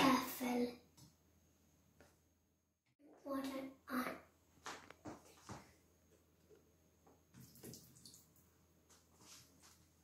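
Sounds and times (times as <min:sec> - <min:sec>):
water trickling and dripping: 0:07.3 - 0:08.5.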